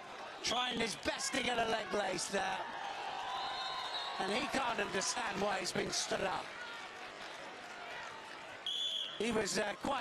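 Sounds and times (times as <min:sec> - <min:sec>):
referee's whistle: 0:03.4 - 0:04.3, 0:08.6 - 0:09.3.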